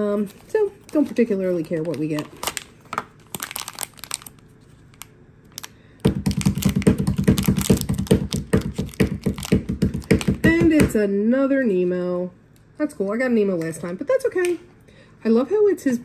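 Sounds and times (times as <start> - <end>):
foil wrapper crinkling: 0.3 - 10.4.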